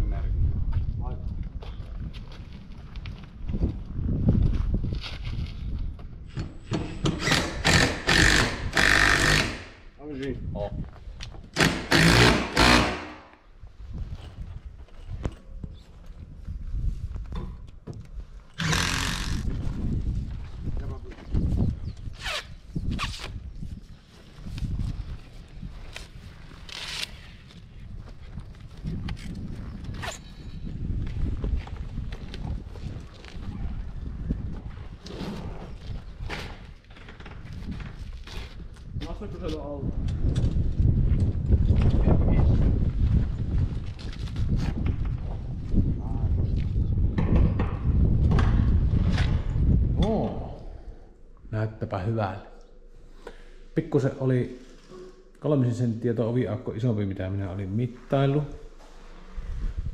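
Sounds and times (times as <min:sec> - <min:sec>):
wind rumbling on microphone: 0:00.0 - 0:53.0, 0:55.8 - 0:59.9
power tool bursts: 0:06.9 - 0:09.8, 0:11.6 - 0:13.2, 0:18.6 - 0:19.5.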